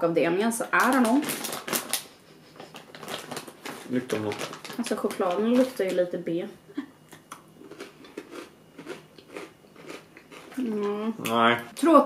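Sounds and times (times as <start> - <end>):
small crunches and clicks: 2.7 - 6.0
people chewing chocolate: 7.1 - 11.4.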